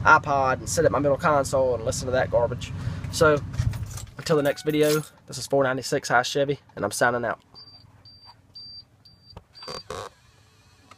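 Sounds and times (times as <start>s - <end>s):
dashboard warning chime beeping: 4.3s - 4.9s, 7.6s - 10.0s.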